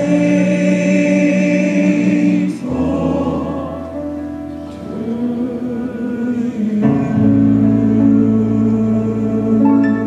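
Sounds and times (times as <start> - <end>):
male vocal quartet singing chords: 0.0 - 10.0.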